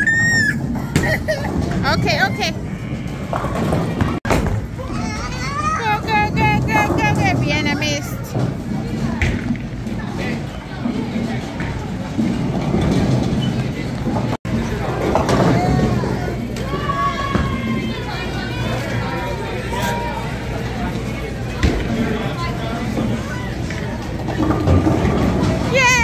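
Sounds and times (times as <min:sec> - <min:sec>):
voices and chatter: 0:00.0 - 0:26.0.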